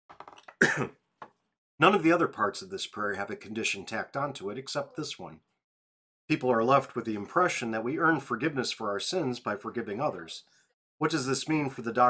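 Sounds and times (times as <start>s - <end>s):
man clearing his throat: 0.6s - 0.9s
man speaking: 1.8s - 5.4s, 6.3s - 10.4s, 11.0s - 12.0s.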